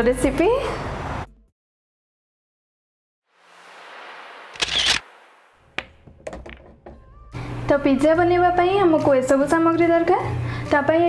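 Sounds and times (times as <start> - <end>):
camera shutter snap: 4.5 - 5.1.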